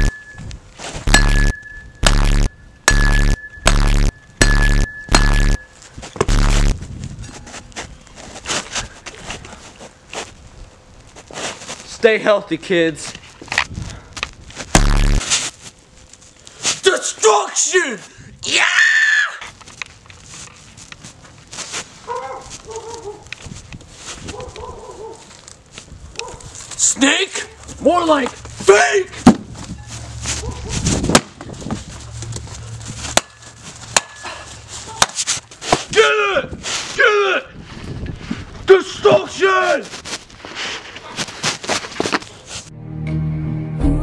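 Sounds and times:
metal bat knocking on frozen ground: 0:01.1 - 0:06.6, 0:33.1 - 0:34.3
footsteps in snow: 0:11.0 - 0:12.1, 0:14.4 - 0:16.9, 0:20.1 - 0:26.8, 0:29.5 - 0:35.9, 0:36.5 - 0:37.0, 0:37.6 - 0:42.7.

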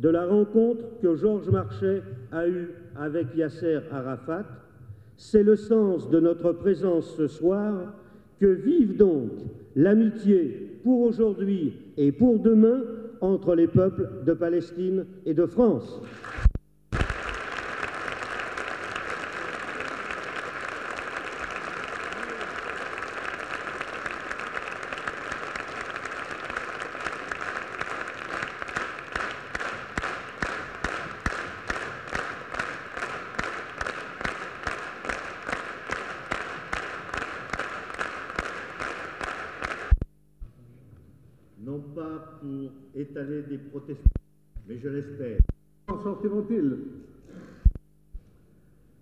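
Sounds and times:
audience applauding: 0:16.0 - 0:40.0
rhythmic clapping in unison: 0:16.1 - 0:40.1.

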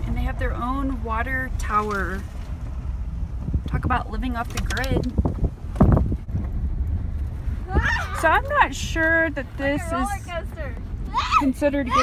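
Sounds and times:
car road and wind noise: 0:00.0 - 0:12.0.

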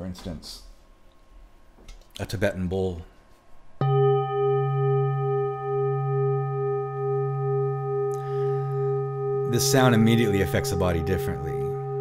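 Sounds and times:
singing bowl ringing: 0:03.8 - 0:12.0.

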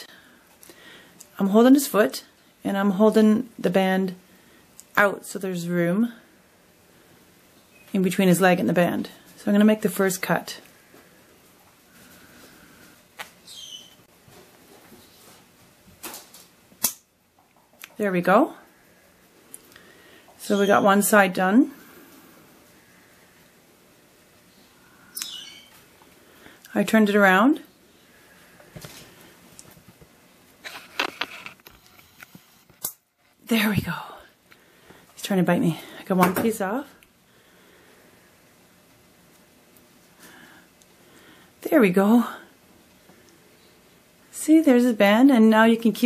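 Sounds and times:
parakeet chirp: 0:13.4 - 0:14.0, 0:24.5 - 0:25.8
sharp snip of band cutter: 0:16.8 - 0:17.0.

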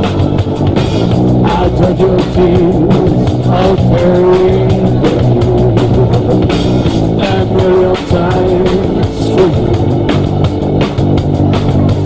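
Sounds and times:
bending lead guitar line: 0:00.0 - 0:12.0
drum beat: 0:00.0 - 0:12.0
live rock band playing: 0:00.0 - 0:12.0.

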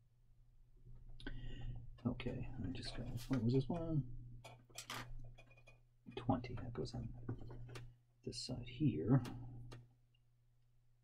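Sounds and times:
plastic parts clicking and rustling: 0:03.3 - 0:05.8.

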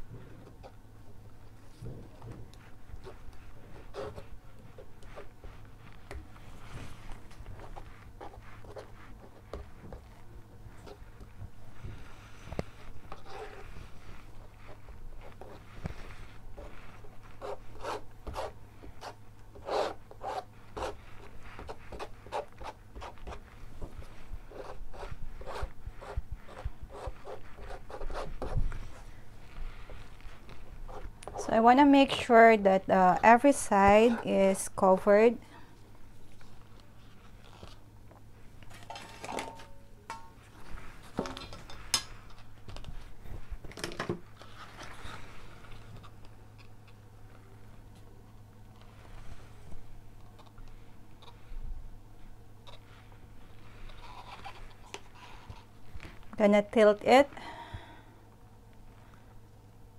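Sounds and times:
spreader scraping paint on canvas: 0:01.4 - 0:34.9, 0:52.7 - 0:55.8.

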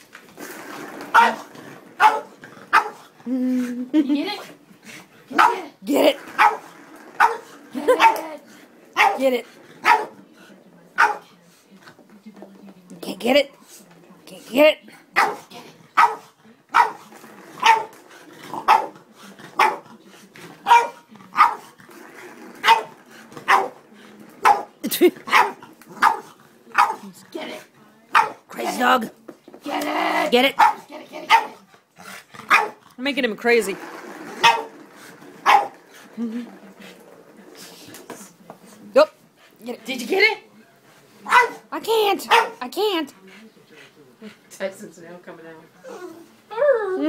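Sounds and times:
dog barking: 0:02.0 - 0:03.0, 0:05.3 - 0:05.7, 0:06.4 - 0:06.6, 0:07.2 - 0:08.2, 0:09.0 - 0:09.2, 0:09.8 - 0:10.1, 0:11.0 - 0:11.2, 0:15.2 - 0:17.0, 0:17.6 - 0:17.9, 0:18.6 - 0:18.9, 0:19.6 - 0:19.8, 0:20.6 - 0:21.6, 0:22.6 - 0:22.9, 0:23.5 - 0:23.8, 0:25.3 - 0:27.0, 0:28.2 - 0:28.4, 0:30.6 - 0:31.6, 0:32.5 - 0:32.8, 0:34.4 - 0:34.7, 0:35.4 - 0:35.7, 0:41.3 - 0:41.6, 0:42.3 - 0:42.6
dog barking sharply: 0:41.3 - 0:41.6.

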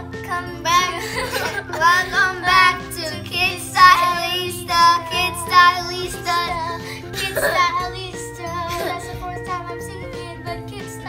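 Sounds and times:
girls singing: 0:00.0 - 0:11.0.

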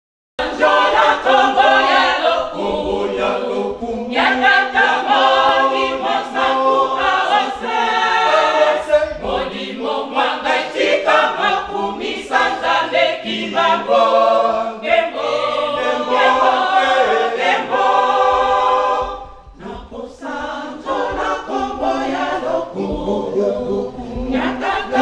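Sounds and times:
choir singing a cappella hymn: 0:00.4 - 0:25.0.

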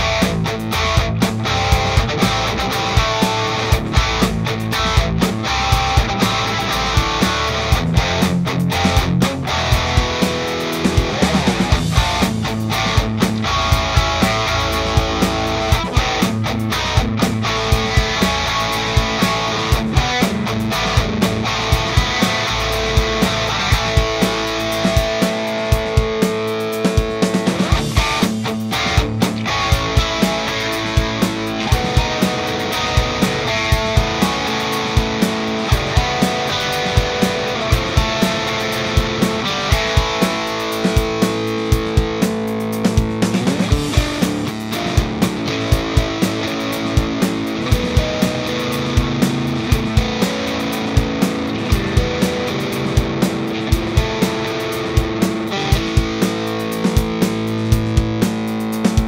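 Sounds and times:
distorted electric guitar riffing: 0:00.0 - 0:59.0.

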